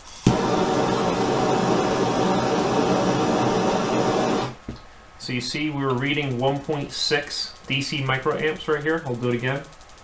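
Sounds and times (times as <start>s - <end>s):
gas torch hissing: 0.0s - 4.8s
gas torch lighting pop: 0.0s - 4.8s.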